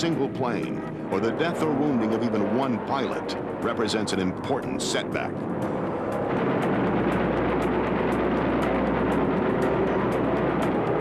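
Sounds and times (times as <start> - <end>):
aircraft engines droning: 0.0 - 11.0
background music: 0.0 - 11.0.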